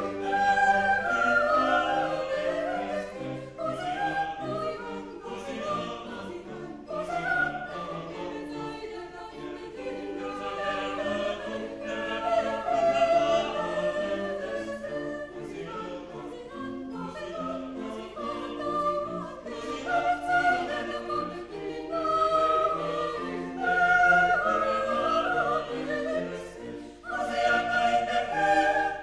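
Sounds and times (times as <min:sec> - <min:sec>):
choir singing in parts: 0:00.0 - 0:29.0.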